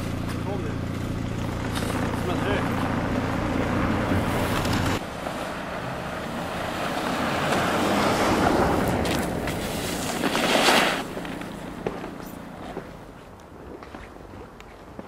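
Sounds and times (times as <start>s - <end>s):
tyres rushing through snow: 0.0s - 12.9s
car engine low hum: 0.0s - 14.4s.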